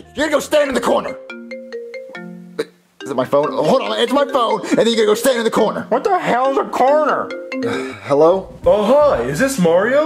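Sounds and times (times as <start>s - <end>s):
mobile phone ringtone: 1.1s - 5.5s, 7.0s - 8.1s.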